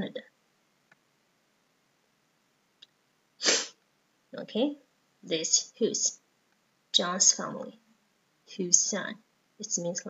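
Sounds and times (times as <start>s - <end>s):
loud breathy burst: 3.4s - 3.8s.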